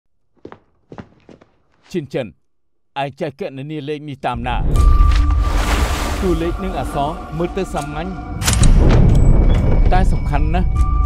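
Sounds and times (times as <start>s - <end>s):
footsteps: 0.3s - 1.9s
man speaking: 1.9s - 2.4s, 3.0s - 4.8s, 6.2s - 8.3s.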